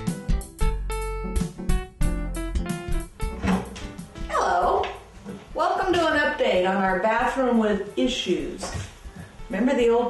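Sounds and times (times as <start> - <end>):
acoustic guitar music: 1.3 - 7.5
woman speaking: 4.3 - 8.8, 9.5 - 10.0.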